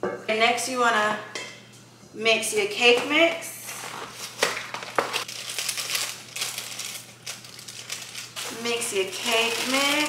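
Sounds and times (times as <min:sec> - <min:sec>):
plastic bag crinkling: 0:03.7 - 0:10.0.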